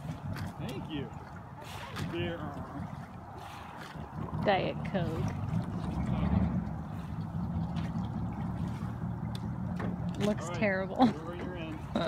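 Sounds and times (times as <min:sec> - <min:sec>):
motorboat engine hum: 0:00.0 - 0:12.0.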